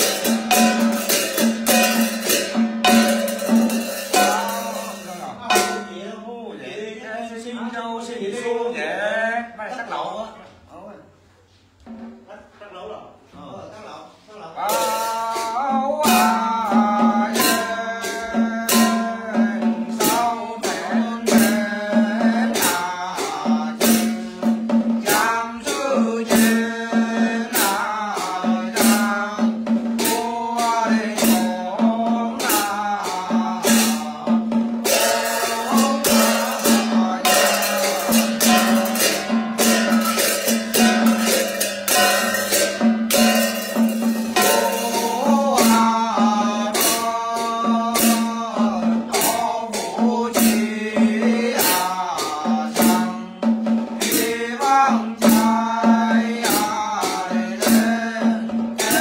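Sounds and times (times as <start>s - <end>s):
hand cymbals clashing: 0.0s - 6.0s, 14.7s - 59.0s
man chanting: 2.9s - 10.4s, 12.4s - 43.4s, 44.3s - 59.0s.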